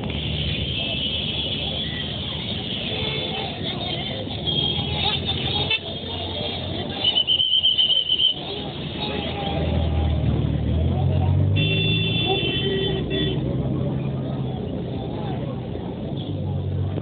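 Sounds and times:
crowd chatter: 0:00.0 - 0:17.0
vehicle horn: 0:11.6 - 0:13.5.

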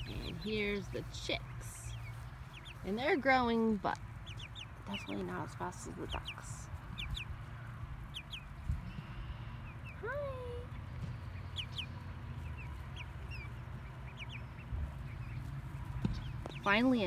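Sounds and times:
steady low rumble: 0:00.0 - 0:17.0
young chickens peeping: 0:00.0 - 0:17.0.

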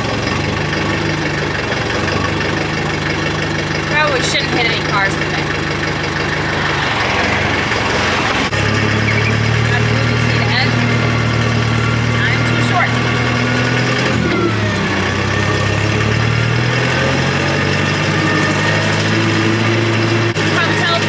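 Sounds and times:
tractor engine running: 0:00.0 - 0:21.0.

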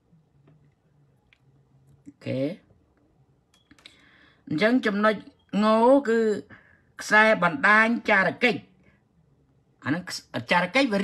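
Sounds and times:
man speaking: 0:02.1 - 0:02.7, 0:04.4 - 0:08.7, 0:09.8 - 0:11.0.

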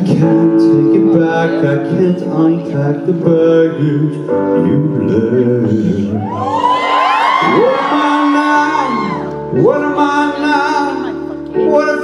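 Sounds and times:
man singing ballad: 0:00.0 - 0:12.0.

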